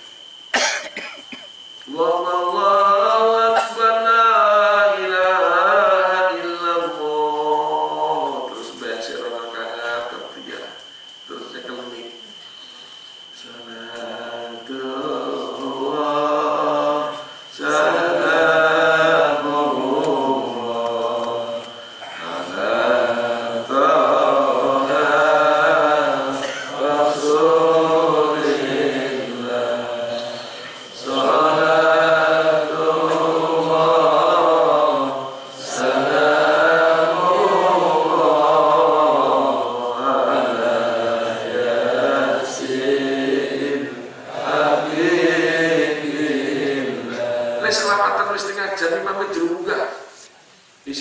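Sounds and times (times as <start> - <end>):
man chanting: 1.9 - 10.8, 45.9 - 50.1.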